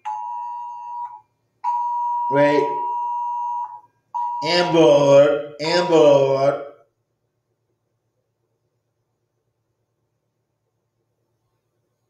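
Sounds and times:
two-note emergency alert tone: 0:00.1 - 0:04.8.

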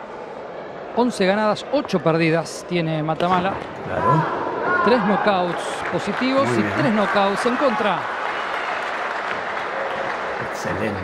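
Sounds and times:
crowd hubbub: 0:00.0 - 0:08.1, 0:09.2 - 0:11.0
crowd clapping: 0:04.9 - 0:11.0.

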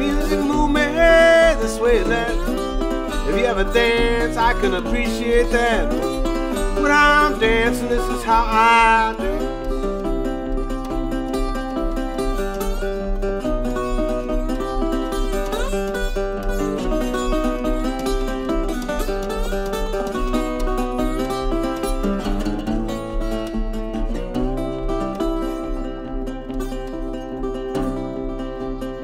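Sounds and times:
fingerpicked resonator guitar: 0:00.0 - 0:29.0.

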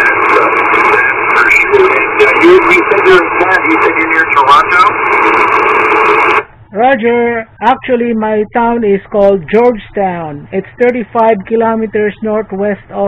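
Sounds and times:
garbled radio voice: 0:00.0 - 0:05.6
radio static hiss: 0:00.0 - 0:07.8.

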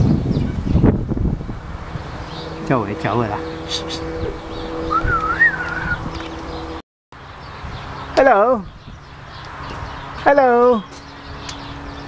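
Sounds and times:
steady low hum: 0:00.5 - 0:06.8
whistled note rising and falling: 0:02.2 - 0:06.8.

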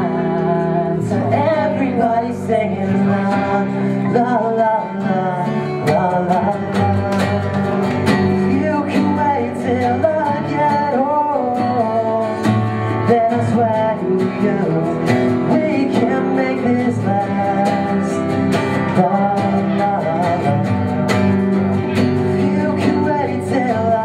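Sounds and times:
acoustic guitars strummed: 0:00.0 - 0:24.0
person singing: 0:00.0 - 0:24.0.

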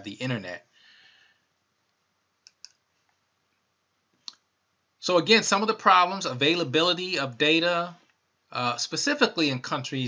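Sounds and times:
faint computer clicks: 0:01.9 - 0:03.2.

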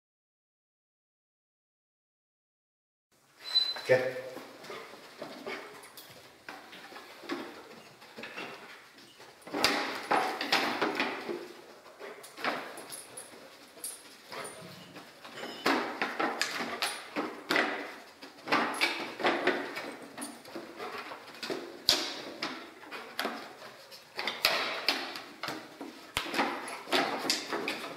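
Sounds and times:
dog sniffing: 0:04.4 - 0:06.0.

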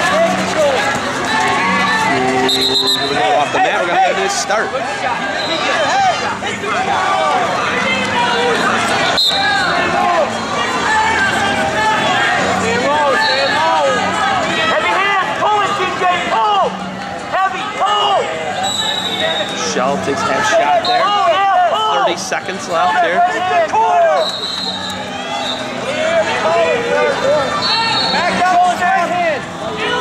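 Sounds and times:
voices in gym: 0:00.0 - 0:30.0
shoes squeaking on mat: 0:01.3 - 0:03.7.

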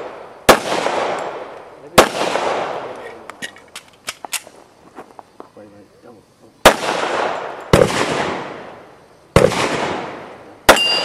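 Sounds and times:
gunshots with echo: 0:00.0 - 0:02.9, 0:06.6 - 0:08.7, 0:09.3 - 0:11.0.

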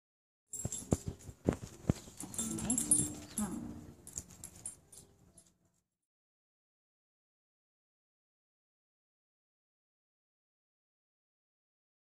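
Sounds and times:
rustling from handling: 0:00.5 - 0:05.5.

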